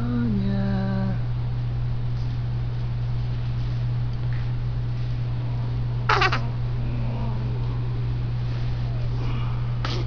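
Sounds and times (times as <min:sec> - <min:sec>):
steady low hum: 0:00.0 - 0:10.0
baby whimpering: 0:06.1 - 0:06.5.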